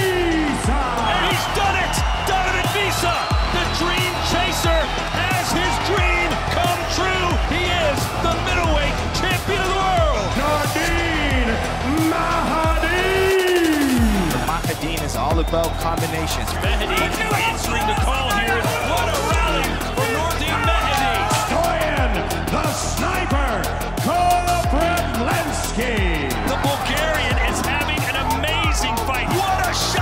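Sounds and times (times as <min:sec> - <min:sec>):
music with steady beat: 0:00.0 - 0:30.0.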